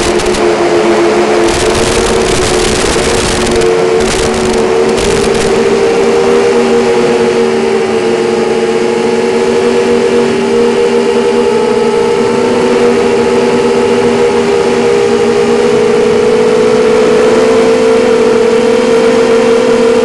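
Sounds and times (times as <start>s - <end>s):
quadcopter motors whining: 0.0s - 20.0s.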